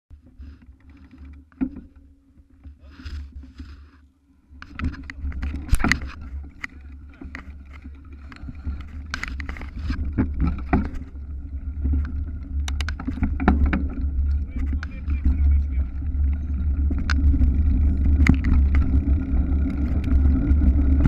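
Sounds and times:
bike knocks and rattles: 4.6 - 21.0
wind rumble on microphone: 4.6 - 21.0.

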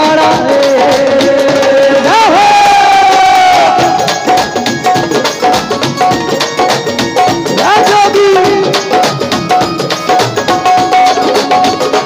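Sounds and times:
man calling over public address: 7.5 - 9.1.

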